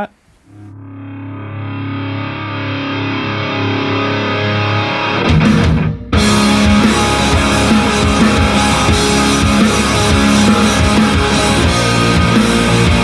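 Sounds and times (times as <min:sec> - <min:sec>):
distorted electric guitar chord: 0:00.5 - 0:13.0
punk rock song over loudspeaker: 0:01.7 - 0:13.0.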